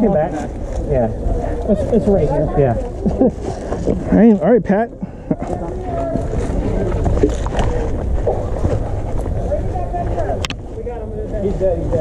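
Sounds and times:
wind rumble on microphone: 0:05.5 - 0:12.0.

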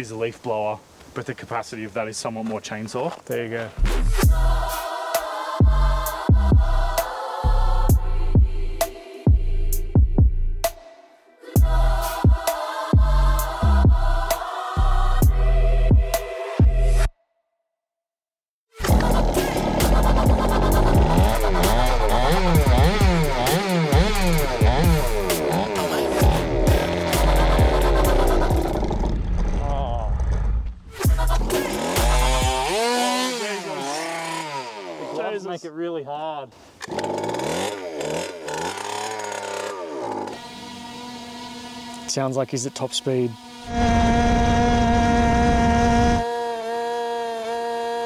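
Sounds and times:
scooter engine revving high: 0:18.8 - 0:29.8, 0:31.0 - 0:35.4, 0:36.9 - 0:48.0.

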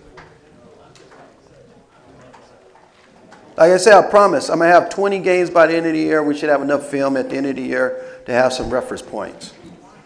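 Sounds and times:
faint distant murmurs: 0:00.0 - 0:10.0.

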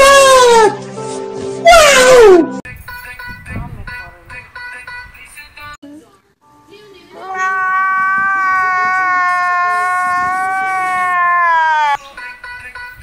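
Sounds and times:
man wailing: 0:07.3 - 0:12.0.

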